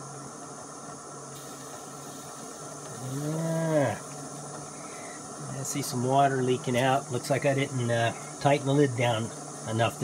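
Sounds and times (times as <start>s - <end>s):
gas stove burner hissing: 0.0s - 10.0s
man humming: 2.9s - 4.1s.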